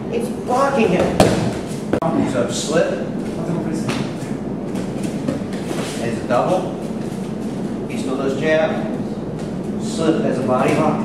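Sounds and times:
steady background noise: 0.0 - 11.0.

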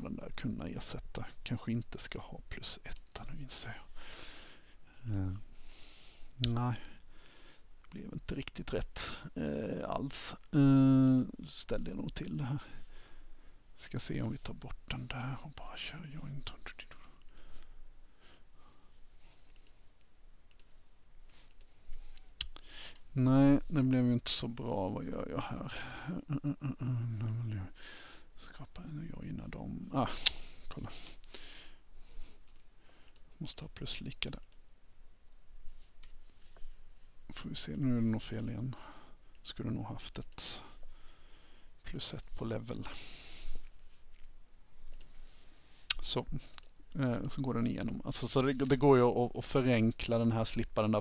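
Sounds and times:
soft breathy hiss: 0.0 - 51.0
computer mouse clicks: 19.5 - 20.7, 21.4 - 22.6, 32.4 - 35.4, 44.8 - 45.2, 45.9 - 47.5.

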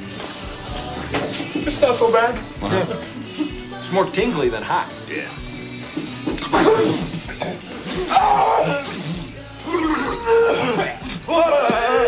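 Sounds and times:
men groaning in pain: 7.8 - 12.0.

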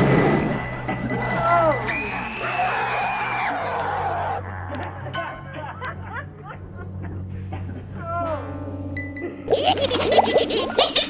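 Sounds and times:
background music with low drone: 0.0 - 11.0.

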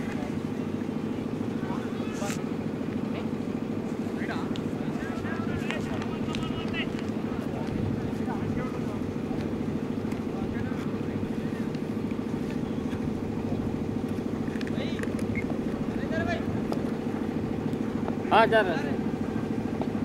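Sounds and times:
pulsing engine drone: 0.0 - 20.0.

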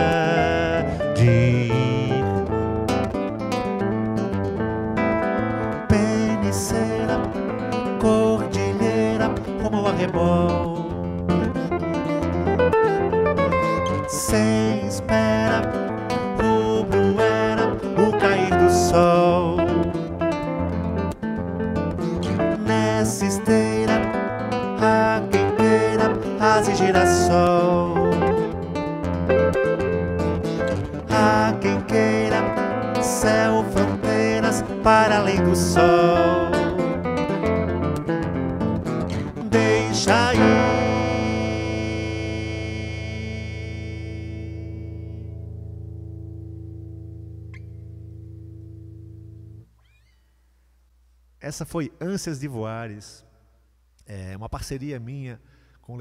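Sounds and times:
electric and acoustic guitars playing: 0.0 - 50.4.

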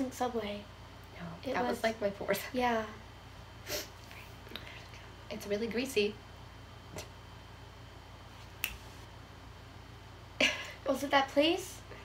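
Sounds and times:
low room hum: 0.0 - 12.0
finger snap: 8.6 - 8.9.

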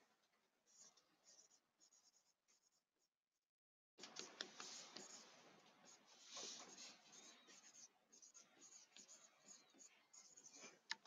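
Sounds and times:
pen scratching while writing: 4.1 - 10.8.

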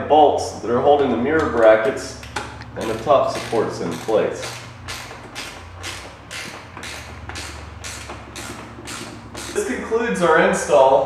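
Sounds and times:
wrench scraping strokes: 2.7 - 9.8.

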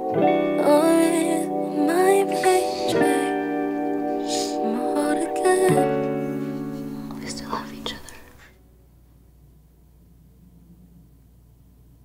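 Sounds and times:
sustained music chord: 0.0 - 8.0
low room hiss: 0.0 - 12.0.

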